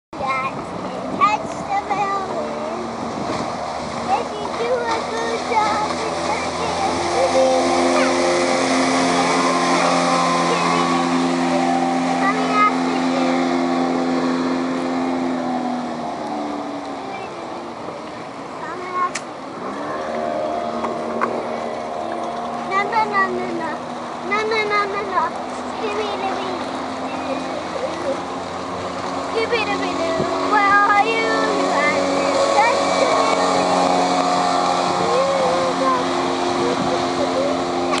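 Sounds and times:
outboard boat engine passing: 0.1s - 38.0s.

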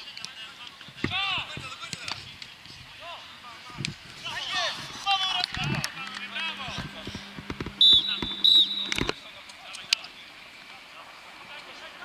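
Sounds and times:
steady low hum: 2.8s - 9.2s
referee's whistle blasts: 7.7s - 9.2s.

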